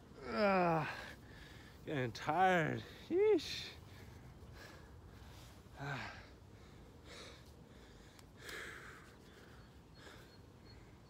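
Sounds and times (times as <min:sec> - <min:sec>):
man breathing hard: 0:00.2 - 0:01.8, 0:03.8 - 0:11.0.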